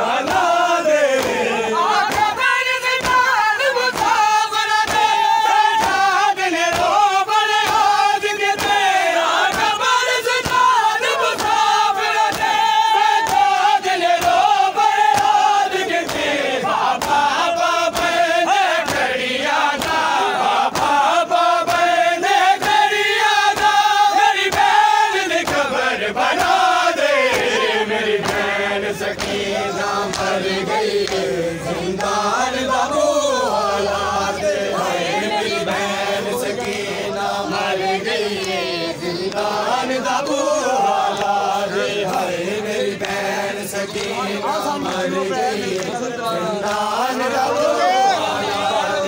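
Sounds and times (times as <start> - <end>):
crowd beating chests: 0.0 - 49.0
men chanting: 0.0 - 49.0.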